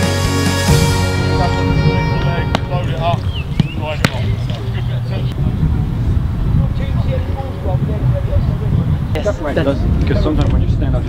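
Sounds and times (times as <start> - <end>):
steady low rumble: 0.7 - 9.1
distant voices: 0.7 - 11.0
footballs being kicked: 3.6 - 4.6.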